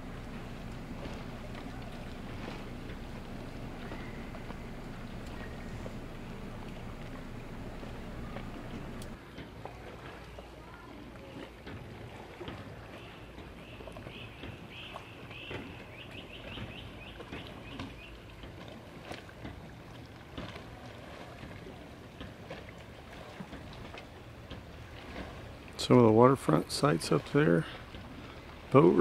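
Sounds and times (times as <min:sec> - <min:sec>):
low wash of water: 0:00.0 - 0:29.0.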